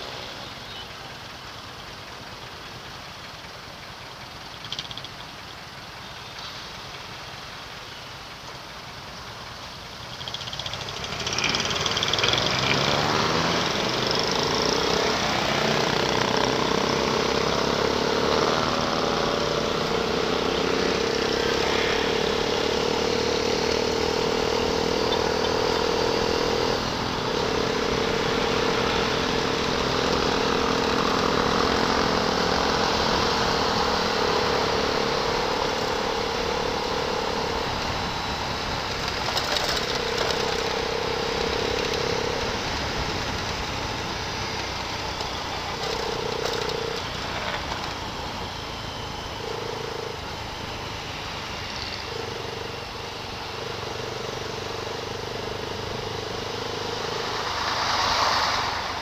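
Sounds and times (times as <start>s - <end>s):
wind and road noise: 0.0s - 59.0s
motorcycle engine accelerating: 10.1s - 59.0s.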